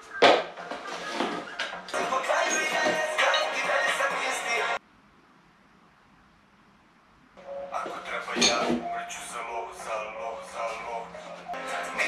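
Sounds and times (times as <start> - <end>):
background music: 0.0 - 4.8, 7.4 - 12.0.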